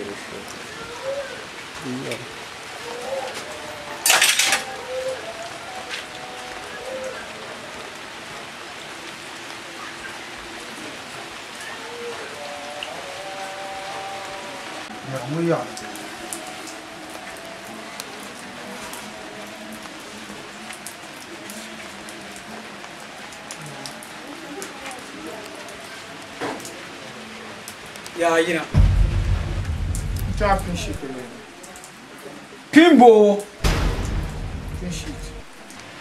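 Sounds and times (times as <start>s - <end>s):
faint indistinct voices: 0.0s - 28.7s, 30.6s - 32.8s.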